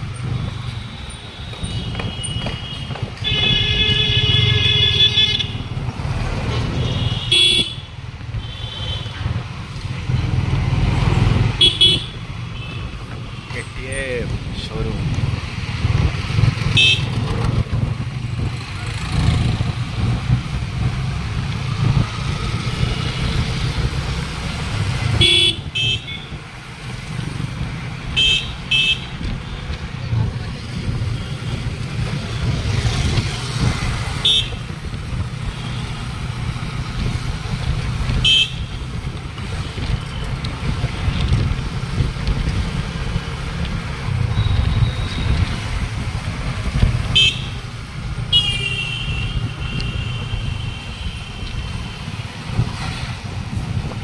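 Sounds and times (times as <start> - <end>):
wind rumble: 12.3 - 28.2, 29.1 - 48.3, 49.1 - 54.0
motorcycle engine: 15.5 - 50.3.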